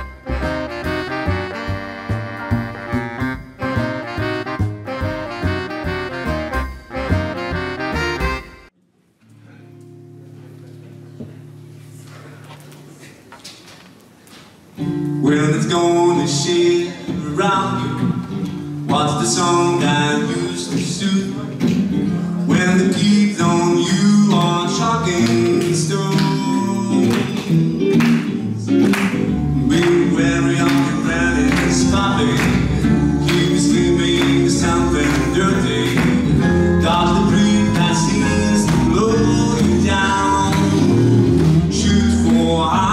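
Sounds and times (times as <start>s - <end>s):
acoustic swing band playing: 0.0s - 8.7s, 14.8s - 42.9s
double bass: 0.0s - 8.7s, 17.1s - 42.9s.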